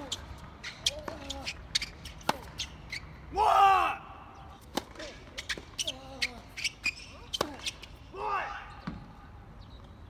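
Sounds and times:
racket hitting tennis ball: 0.0s - 2.8s, 4.6s - 7.9s.

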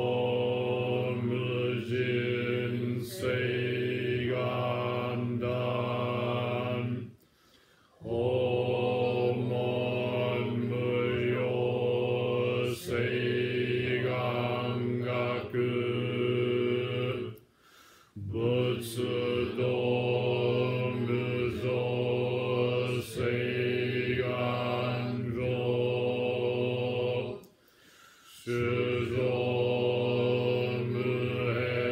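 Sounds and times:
low monotone chanting: 0.0s - 7.2s, 7.9s - 17.4s, 18.1s - 27.6s, 28.2s - 31.9s.

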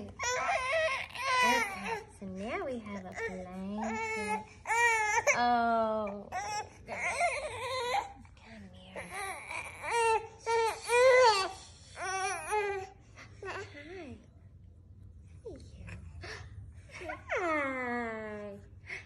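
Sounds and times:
baby fussing and crying: 0.0s - 2.1s, 3.1s - 5.4s, 9.0s - 13.0s.

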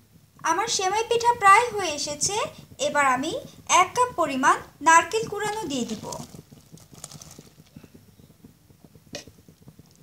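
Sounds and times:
soft bubbling pops: 5.0s - 10.0s.

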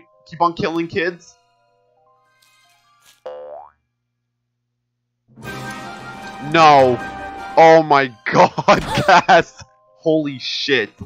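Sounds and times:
faint background music: 0.0s - 3.1s, 6.4s - 11.0s.

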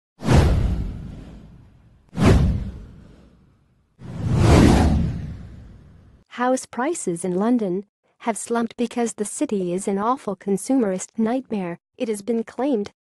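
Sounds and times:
whoosh sound effects: 2.2s - 3.4s, 4.0s - 6.1s.

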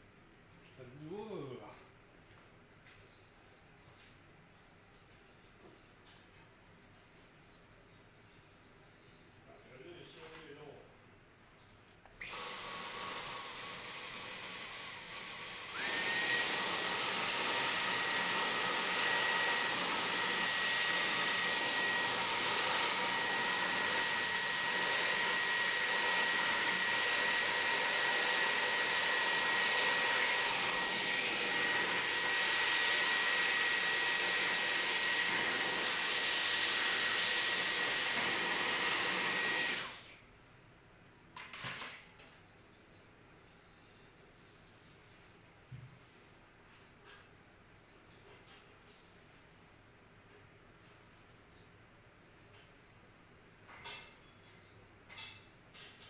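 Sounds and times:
stick vacuum whining: 12.2s - 40.0s.

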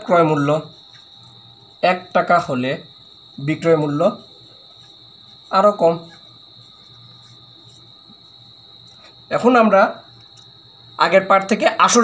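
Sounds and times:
man speaking: 0.0s - 0.8s, 1.8s - 4.3s, 5.5s - 6.2s, 9.3s - 10.1s, 11.0s - 12.0s
high-pitched insect trill: 0.0s - 12.0s.

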